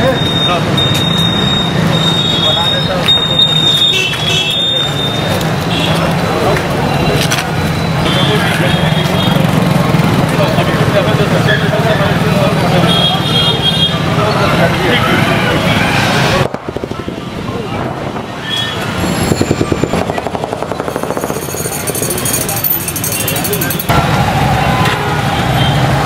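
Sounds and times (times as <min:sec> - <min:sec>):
many people talking: 0:00.0 - 0:26.0
passing traffic: 0:00.0 - 0:26.0.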